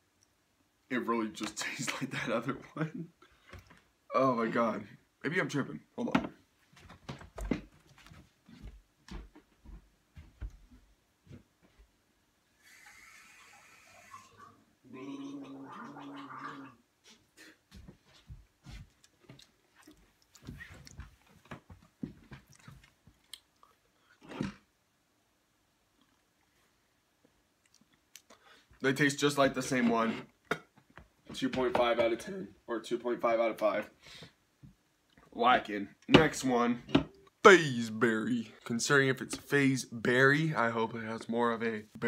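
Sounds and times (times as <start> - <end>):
person speaking: 35.3 - 42.0.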